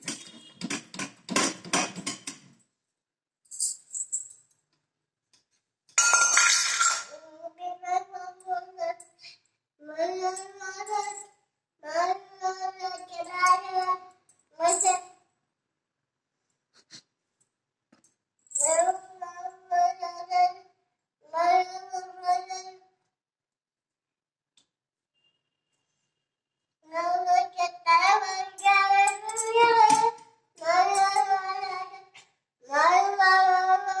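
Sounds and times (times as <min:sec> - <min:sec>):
small child singing: 0:07.1 - 0:15.2, 0:18.6 - 0:23.0, 0:26.8 - 0:34.0.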